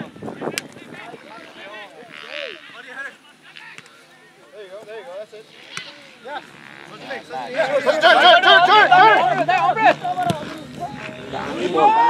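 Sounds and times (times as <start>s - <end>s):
distant voices calling out: 0.0s - 12.0s.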